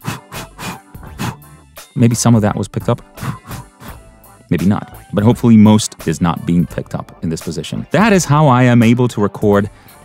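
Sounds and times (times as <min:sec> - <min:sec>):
breathy mouth puffs: 0:00.0 - 0:01.9, 0:03.0 - 0:04.4
background music: 0:00.0 - 0:10.0.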